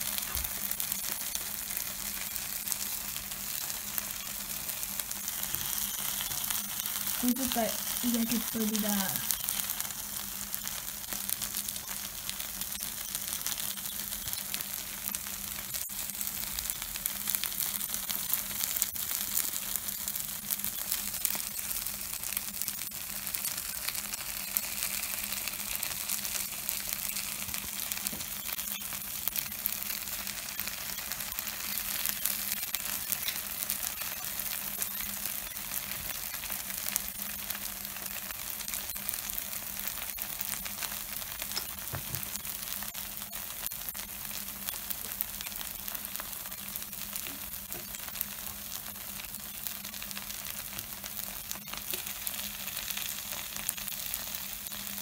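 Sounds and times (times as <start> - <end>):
batter sizzling in oil: 0.0 - 55.0.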